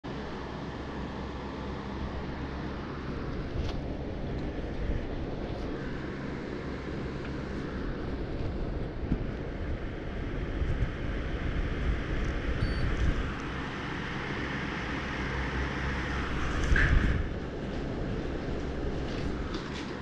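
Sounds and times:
drone propellers buzzing: 0.3 - 20.0.

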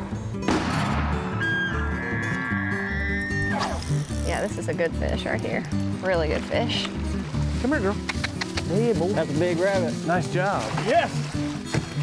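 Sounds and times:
elk bugling whistle: 1.3 - 3.8.

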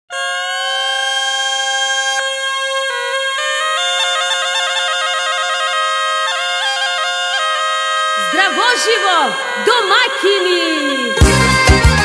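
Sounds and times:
reedy wind instrument note: 0.1 - 12.0.

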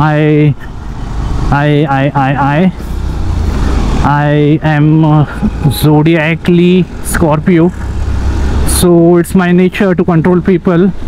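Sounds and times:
motorcycle engine rumble: 0.0 - 11.0.

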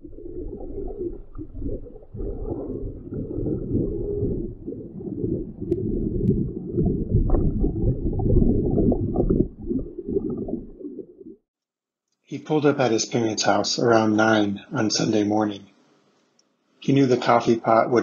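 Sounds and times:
underwater rumbling and bubbling: 0.0 - 11.5.

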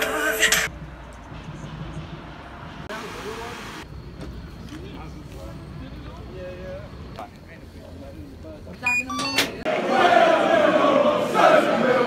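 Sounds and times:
music: 0.0 - 0.7
traffic rumble: 0.0 - 12.0.

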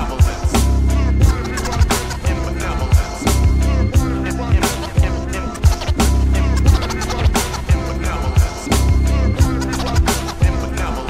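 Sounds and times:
bassline and kick drum: 0.0 - 11.0
turntable scratching: 0.0 - 11.0.

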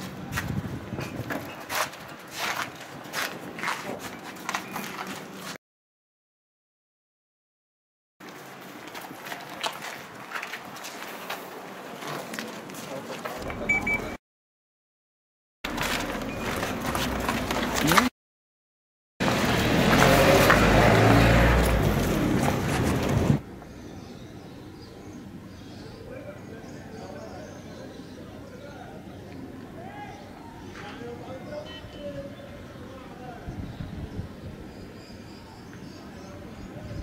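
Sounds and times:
footsteps on brick paving: 0.0 - 5.6, 8.2 - 13.6, 15.7 - 18.1, 19.2 - 23.4
knocks and scuffs of gear: 0.0 - 5.6, 15.7 - 18.1.

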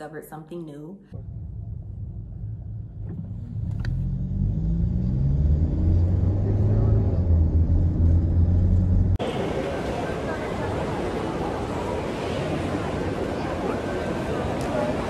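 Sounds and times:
car engine accelerating: 1.4 - 9.3
crowd noise indoors: 9.2 - 15.0.

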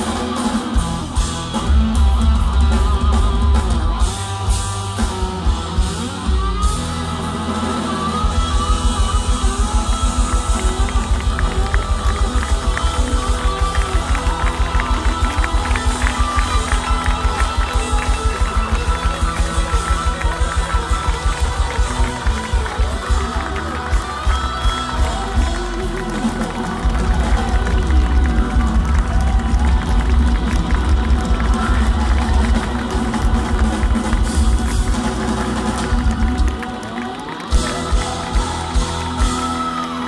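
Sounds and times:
live rock band playing: 0.0 - 40.0.

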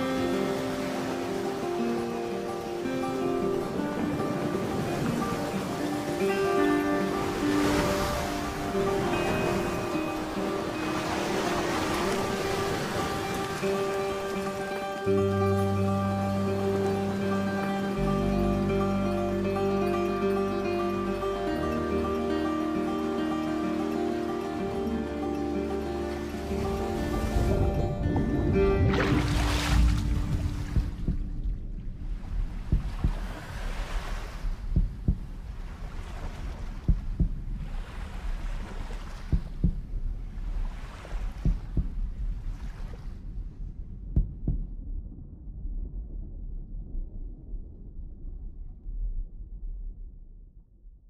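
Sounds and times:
held music chords: 0.0 - 33.4
low rumble: 26.6 - 51.0.

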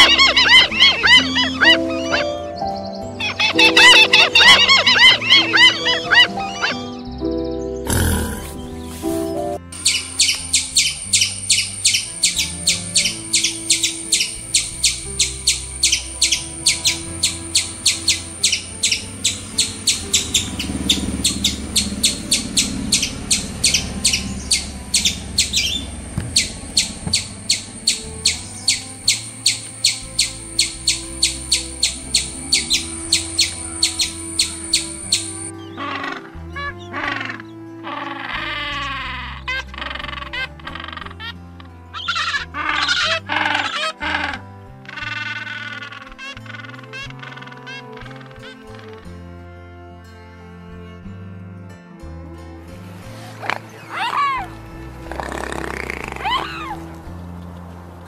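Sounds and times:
high-pitched chirps: 0.0 - 36.2, 42.0 - 44.3
soft background music: 0.0 - 58.0.

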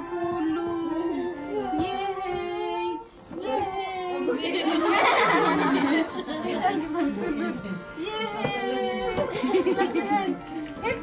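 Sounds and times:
singing with music: 0.0 - 11.0.

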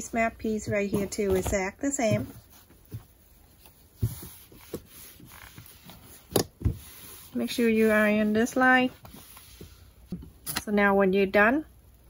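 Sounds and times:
fabric being handled: 0.0 - 10.2.

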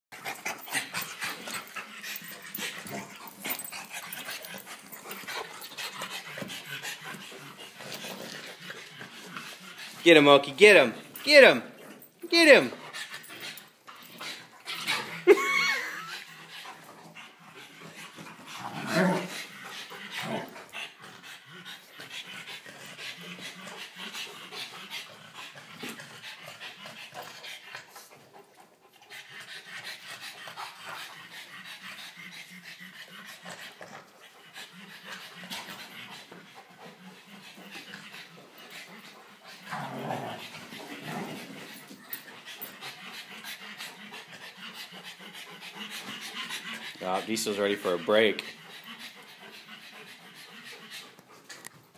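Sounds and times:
dogs panting: 0.1 - 51.9.

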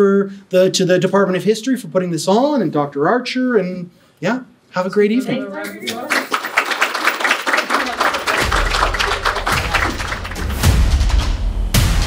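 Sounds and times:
audience applauding: 5.8 - 11.2
music with deep bass: 8.4 - 12.0.

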